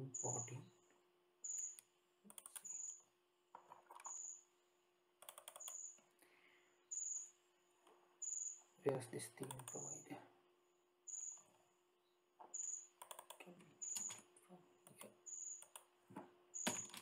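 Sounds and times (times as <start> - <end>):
keyboard and mouse clicks: 1.5 - 4.4, 5.2 - 6.0, 9.4 - 10.0, 12.4 - 15.9, 16.6 - 17.0.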